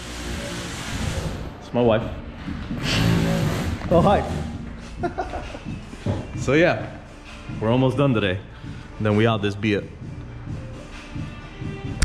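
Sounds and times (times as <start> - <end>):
voices talking in a room: 1.6 - 11.8.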